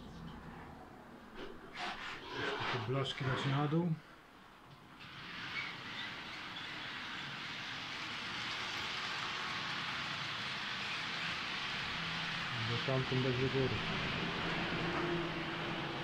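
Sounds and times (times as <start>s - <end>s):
model train whirring on track: 4.9s - 16.0s.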